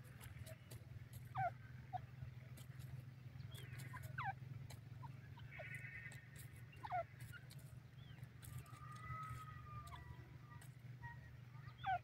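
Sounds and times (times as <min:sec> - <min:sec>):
steady low hum: 0:00.0 - 0:12.0
francolin calling: 0:01.2 - 0:02.2, 0:03.2 - 0:10.4, 0:11.0 - 0:12.0.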